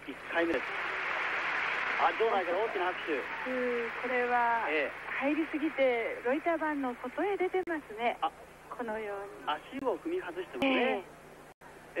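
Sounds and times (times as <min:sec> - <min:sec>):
television commentator talking: 0:00.0 - 0:00.8, 0:02.0 - 0:11.1.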